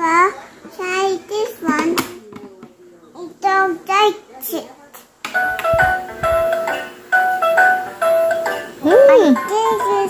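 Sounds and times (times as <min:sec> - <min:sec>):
electronic toy melody: 0:05.4 - 0:10.0.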